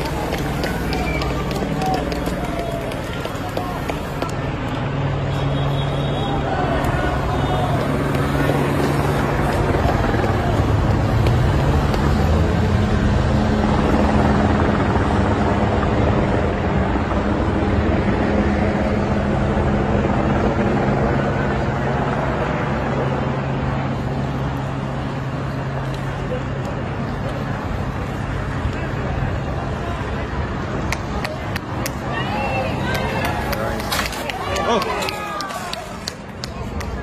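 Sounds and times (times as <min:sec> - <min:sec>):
cars driving past slowly: 0:00.0 - 0:37.0.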